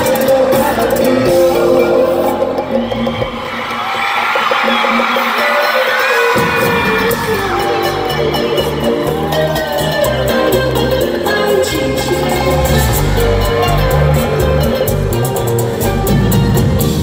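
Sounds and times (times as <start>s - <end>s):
live band playing: 0.0s - 17.0s
crowd cheering: 2.2s - 17.0s.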